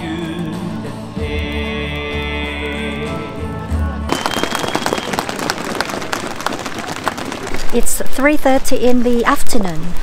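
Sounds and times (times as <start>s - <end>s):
music over loudspeakers: 0.0s - 4.8s
crowd applause: 4.1s - 8.0s.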